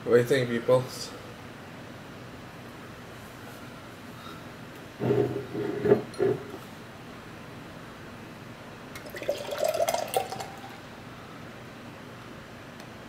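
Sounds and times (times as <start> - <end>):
beer pouring into a glass fizzing: 9.0 - 10.8.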